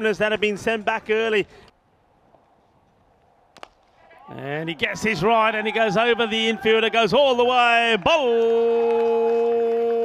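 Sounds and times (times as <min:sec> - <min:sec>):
faint open-ground ambience: 0:00.0 - 0:10.0
cricket bat striking ball: 0:03.5 - 0:03.9.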